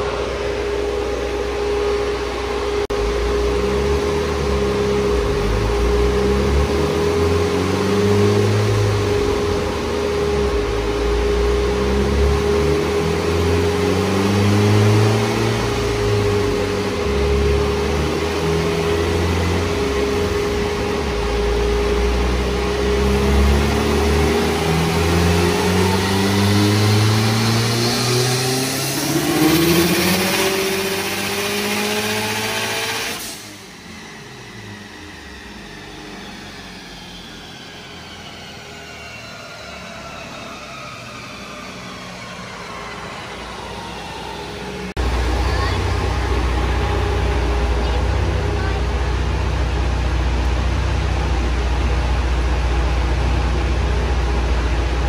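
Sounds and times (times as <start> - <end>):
turbocharged engine revving: 0.0 - 55.0.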